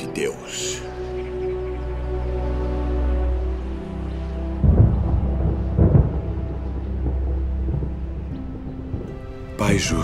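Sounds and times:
low music drone: 0.0 - 10.0
thunder rumbling: 4.4 - 10.0.

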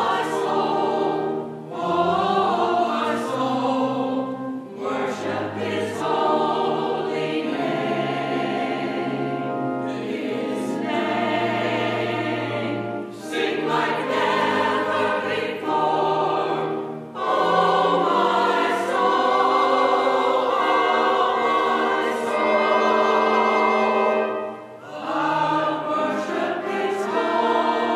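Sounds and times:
church choir singing: 0.0 - 27.9.

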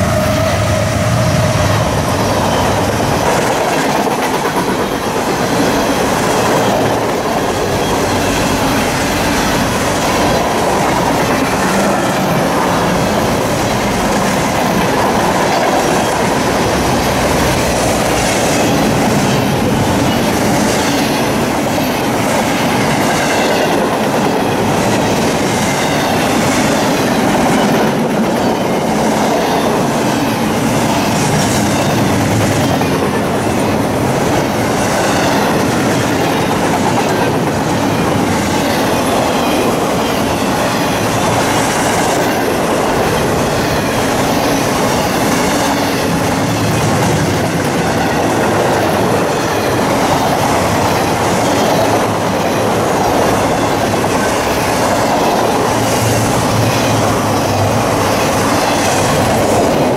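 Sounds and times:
clickety-clack over rail joints: 0.0 - 59.9
freight train wheels on rails: 0.0 - 59.9.

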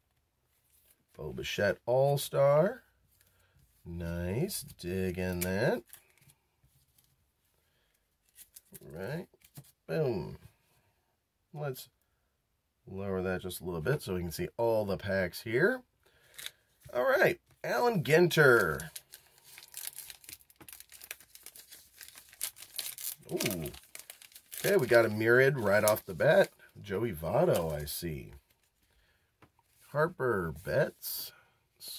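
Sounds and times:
paper wrapper crinkling and tearing: 8.2 - 9.7, 16.2 - 16.6, 18.3 - 28.9.

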